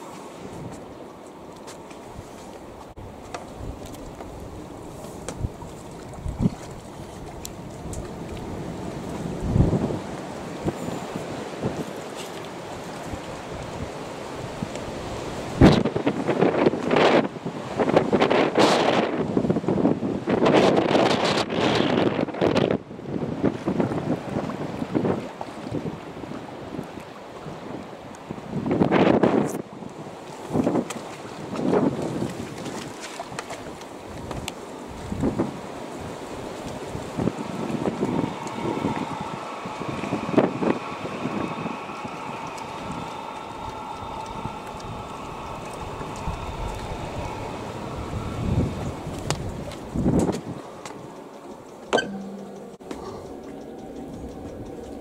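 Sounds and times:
water washing along boat hull: 0.0 - 55.0
wind buffeting microphone: 2.0 - 55.0.

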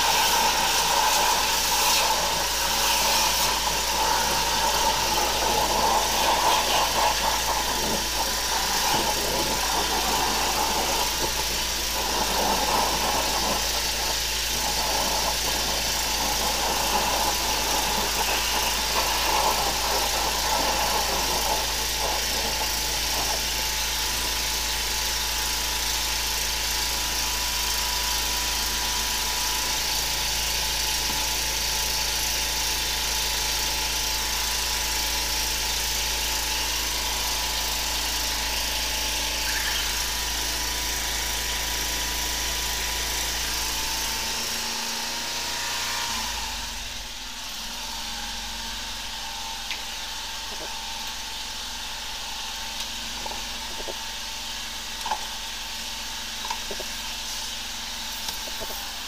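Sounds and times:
water hiss: 0.0 - 49.0, 49.7 - 59.0
drain jetter machine drone: 0.0 - 59.0.

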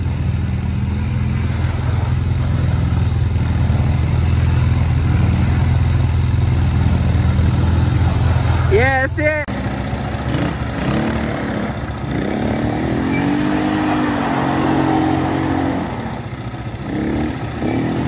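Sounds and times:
quad bike engine running: 0.0 - 18.0.

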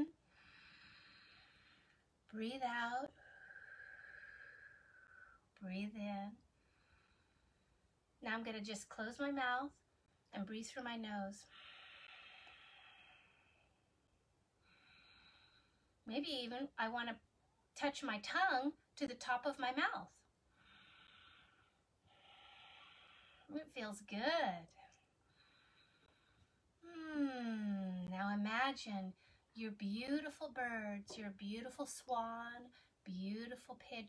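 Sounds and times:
woman breathing in deeply: 0.3 - 2.0, 11.5 - 13.9, 20.5 - 23.5, 25.2 - 26.6.

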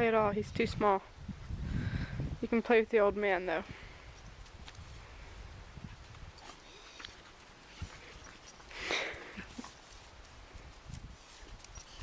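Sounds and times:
dogs scuffling on grass: 5.8 - 12.0.

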